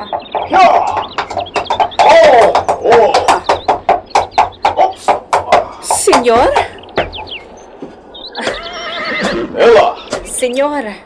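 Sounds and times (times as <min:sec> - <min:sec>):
chickens clucking: 0:00.0 - 0:10.6
dialogue: 0:00.0 - 0:11.0.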